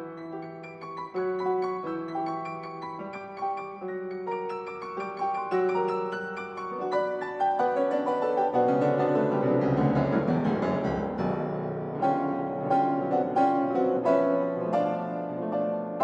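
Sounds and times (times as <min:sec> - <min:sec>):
grand piano playing: 0:00.0 - 0:16.0.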